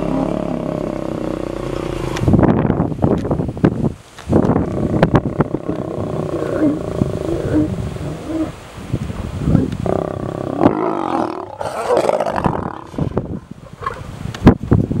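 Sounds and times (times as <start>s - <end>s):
lions snarling and growling: 0.0s - 2.3s, 4.5s - 8.6s, 9.8s - 14.0s.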